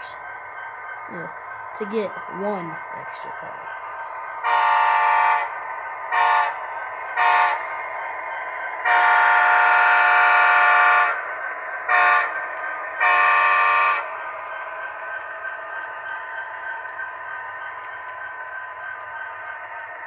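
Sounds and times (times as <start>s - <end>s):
model locomotive engine sound: 0.0s - 20.0s
model locomotive chime horn: 4.4s - 5.5s, 6.1s - 6.6s, 7.2s - 7.7s, 8.8s - 11.2s, 11.9s - 12.4s, 13.0s - 14.1s.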